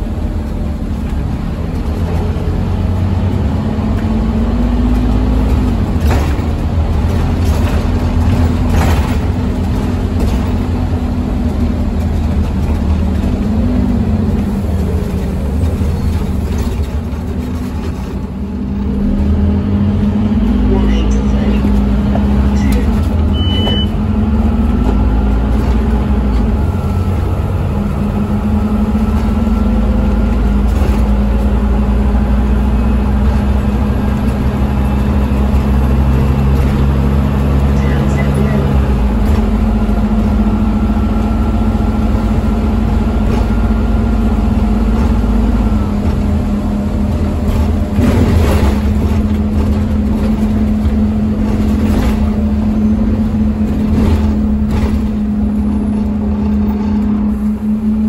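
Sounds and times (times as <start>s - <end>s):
bus diesel engine accelerating: 0.0s - 58.0s.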